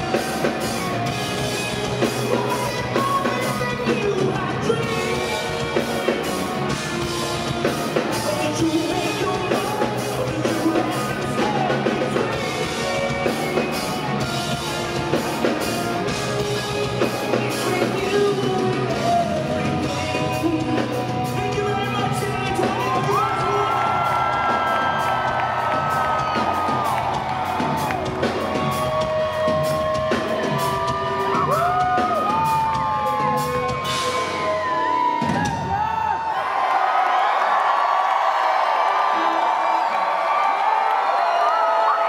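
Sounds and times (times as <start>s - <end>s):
audience cheering and whooping: 0.0s - 20.1s, 21.4s - 42.0s
rock band playing live: 0.0s - 36.2s.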